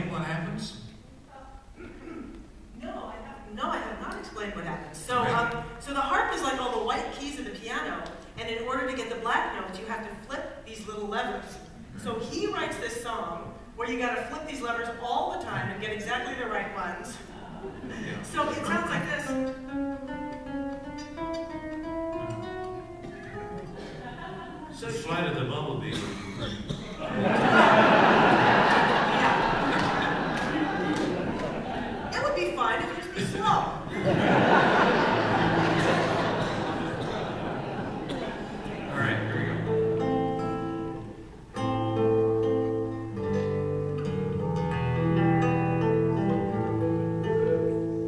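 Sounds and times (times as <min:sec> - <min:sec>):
plucked string notes: 0:18.5 - 0:24.2, 0:35.2 - 0:48.0
classical guitar picked melody: 0:19.2 - 0:24.0, 0:35.3 - 0:48.0.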